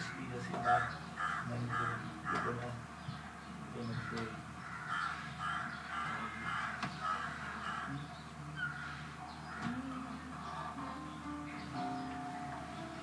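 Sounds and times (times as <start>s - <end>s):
crows cawing: 0.0s - 2.8s, 3.8s - 11.1s
murmur of voices: 0.0s - 13.0s.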